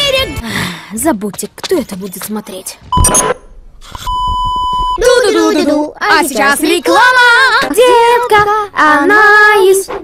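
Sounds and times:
buzzy test tone beep: 2.9 - 5.0.

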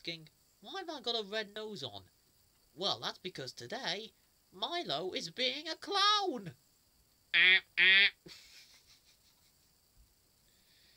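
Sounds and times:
clown nose honk: 7.4 - 8.2.

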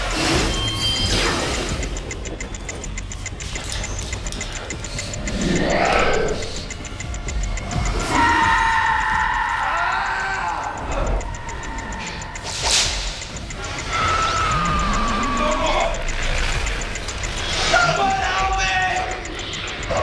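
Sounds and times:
tense music score: 0.0 - 20.0.

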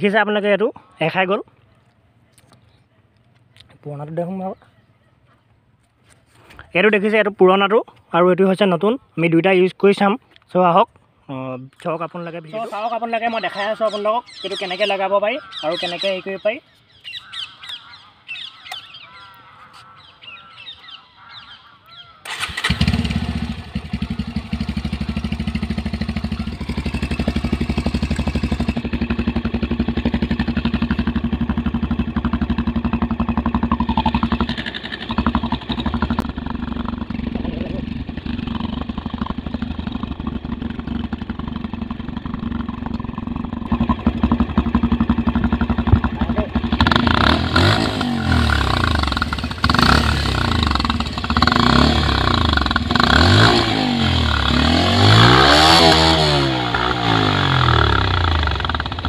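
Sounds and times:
motorcycle engine revving: 22.2 - 59.0
motorcycle engine starting: 22.2 - 59.0
motorcycle engine idling: 22.3 - 59.0.

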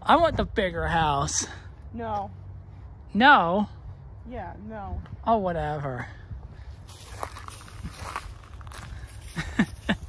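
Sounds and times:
footsteps on dry leafy grass: 6.4 - 10.0.

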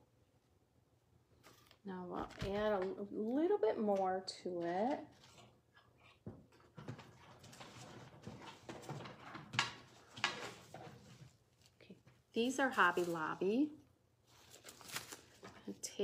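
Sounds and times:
woman's voice: 1.9 - 5.1, 12.4 - 13.8, 15.6 - 16.0
plastic bag rustling: 7.2 - 15.8.

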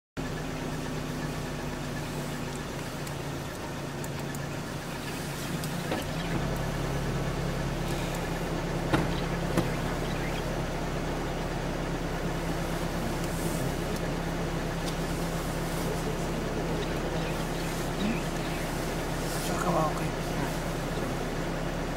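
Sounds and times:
vehicle engine idling: 0.2 - 21.9.

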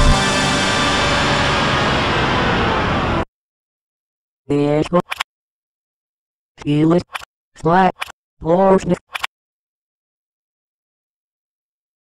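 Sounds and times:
distorted electronic noise: 0.0 - 3.0.

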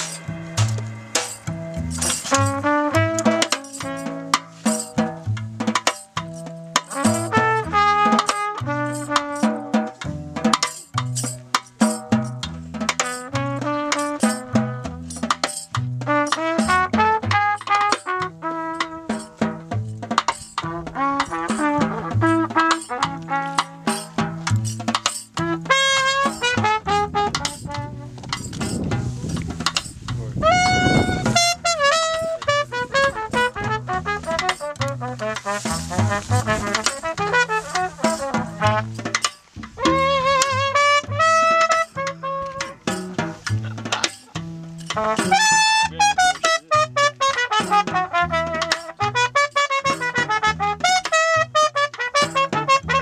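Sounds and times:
plucked double bass: 0.0 - 53.0
snare drum and cymbal strokes: 0.0 - 53.0
trumpet: 0.0 - 53.0.

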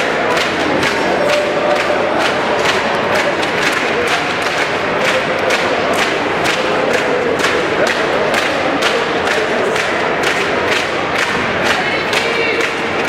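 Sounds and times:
crowd shouting and chanting: 0.0 - 13.0
rhythmic sharp strikes: 0.0 - 13.0.

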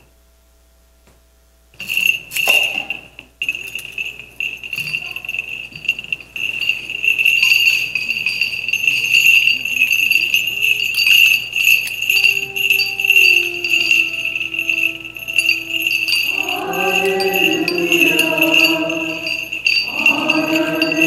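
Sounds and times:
sharp metallic clink: 1.8 - 20.2
small bells jingling on chains: 1.8 - 21.0.

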